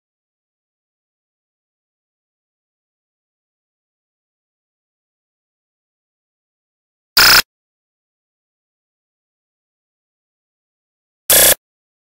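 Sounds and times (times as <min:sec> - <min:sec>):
harsh noise burst: 0:11.3 - 0:11.6.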